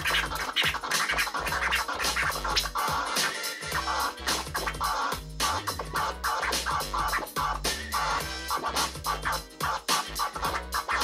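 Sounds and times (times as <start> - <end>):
looping drum and bass beat: 0.0 - 11.0
vinyl record scratching: 0.0 - 11.0.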